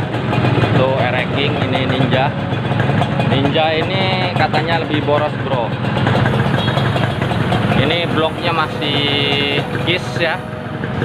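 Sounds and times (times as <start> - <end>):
motorcycle engines idling: 0.0 - 11.0.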